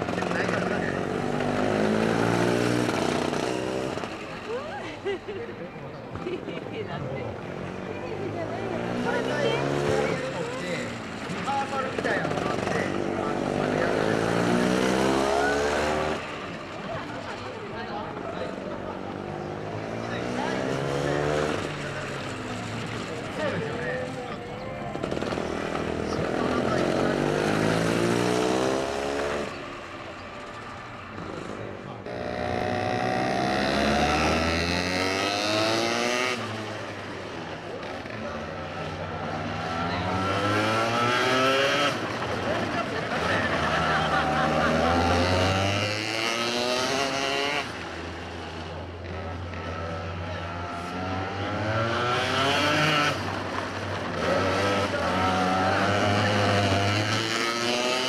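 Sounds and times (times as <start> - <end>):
kart engines revving: 0.0 - 58.0.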